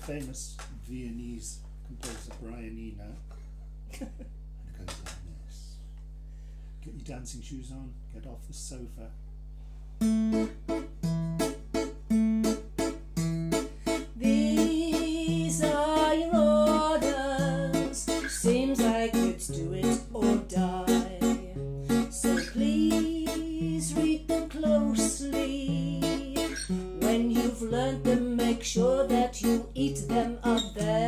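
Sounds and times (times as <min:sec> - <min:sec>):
acoustic guitar waltz: 0:10.0 - 0:31.0
woman singing: 0:14.2 - 0:31.0.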